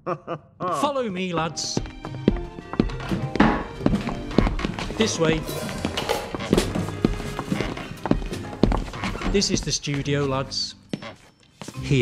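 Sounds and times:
background music: 0:00.1 - 0:12.0
footsteps walking: 0:01.4 - 0:11.8.

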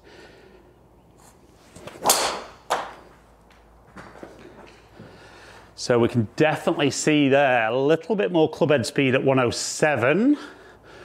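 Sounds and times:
golf club swing whoosh: 0:01.7 - 0:02.8
club striking golf ball: 0:01.9 - 0:03.0.

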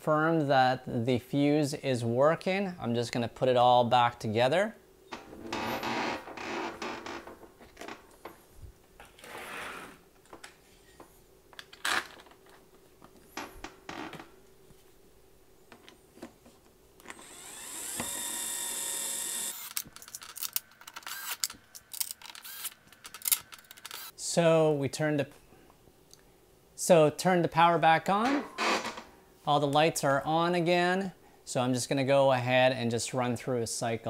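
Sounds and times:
power screwdriver whirring: 0:17.0 - 0:19.9, 0:21.0 - 0:21.5, 0:22.3 - 0:22.8, 0:23.9 - 0:24.1.

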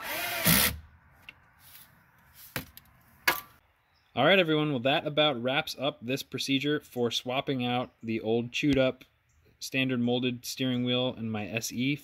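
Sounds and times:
power drill driving screw: 0:00.0 - 0:00.8.

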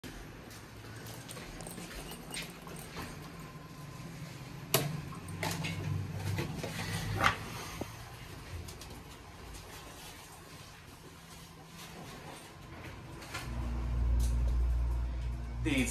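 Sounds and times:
elevator hum with squeaks: 0:00.8 - 0:04.6.

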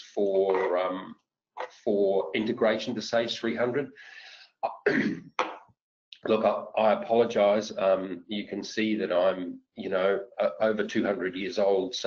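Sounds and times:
person speaking: 0:00.0 - 0:05.6, 0:06.2 - 0:12.0
person clearing throat: 0:02.2 - 0:03.0, 0:04.6 - 0:05.6.

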